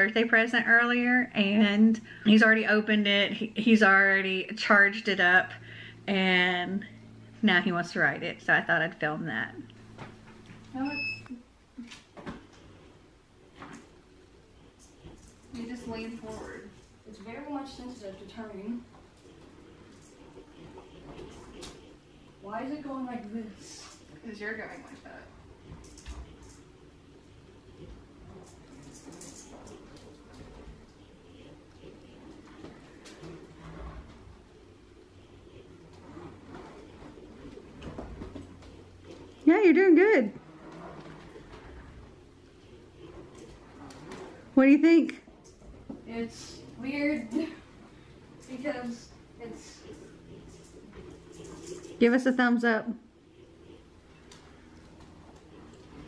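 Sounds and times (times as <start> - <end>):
hoverboard motor whir: 0.0 - 56.0
steady low hum: 0.0 - 56.0
hoverboard beep: 10.8 - 11.4.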